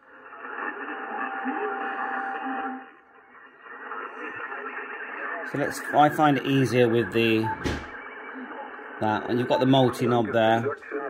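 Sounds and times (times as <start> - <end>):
radio band hiss: 0.0 - 11.0
steady radio whistle: 0.0 - 11.0
garbled radio voice: 3.6 - 7.8, 8.4 - 11.0.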